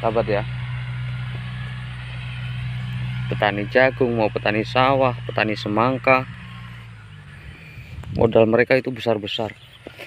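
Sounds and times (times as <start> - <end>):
tractor diesel engine droning: 0.0 - 10.0.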